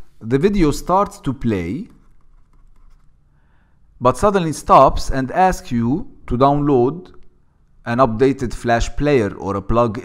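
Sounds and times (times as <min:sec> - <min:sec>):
pen scratching on paper: 0:01.9 - 0:03.1.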